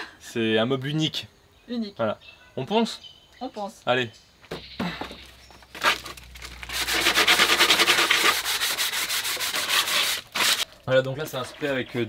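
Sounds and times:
sandpaper rubbing on wood: 5.8s - 10.6s.

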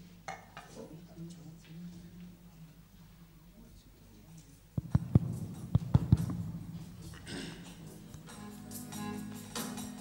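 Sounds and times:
steady low hum: 4.7s - 8.3s
dull low thumps: 4.8s - 7.8s.

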